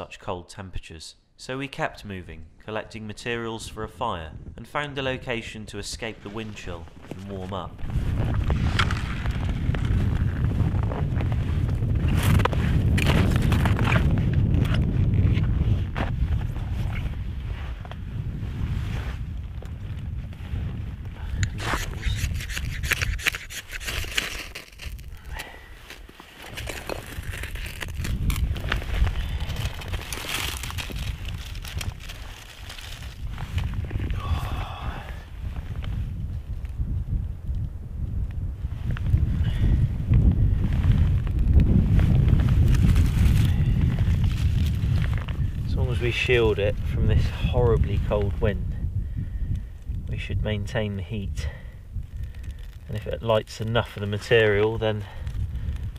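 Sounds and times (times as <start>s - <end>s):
wind buffeting microphone: 3.6s - 4.7s, 5.8s - 55.9s
dry sticks snapping and scraping: 11.2s - 14.9s, 21.4s - 34.8s, 42.6s - 45.4s, 52.0s - 53.0s.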